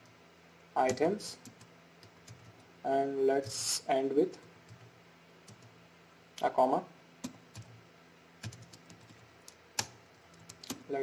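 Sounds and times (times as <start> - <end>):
typing on computer keyboard: 0.9 - 2.7, 4.6 - 5.7, 7.2 - 7.8, 8.4 - 10.9.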